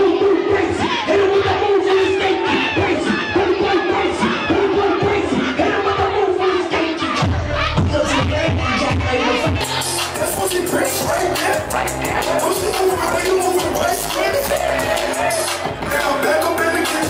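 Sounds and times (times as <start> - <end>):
club music: 0.0 - 17.0
crowd shouting and chanting: 0.0 - 17.0
heavy bass beat: 0.0 - 17.0.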